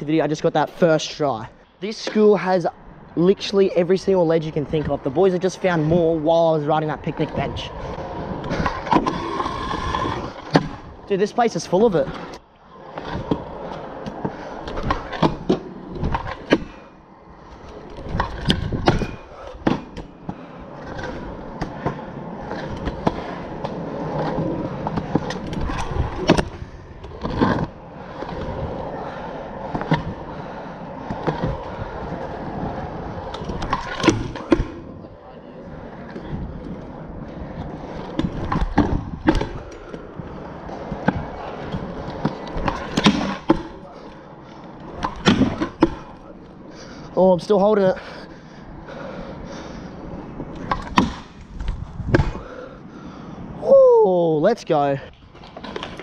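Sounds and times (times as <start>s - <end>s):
scooter wheels rolling on concrete: 0.0s - 56.0s.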